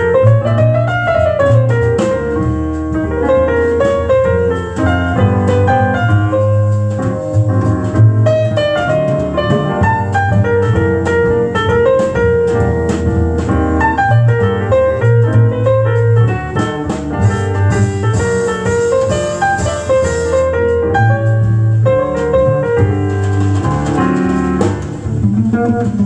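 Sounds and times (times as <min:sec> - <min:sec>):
jazz piano over loudspeakers: 0:00.0 - 0:26.0
low bass line: 0:00.0 - 0:26.0.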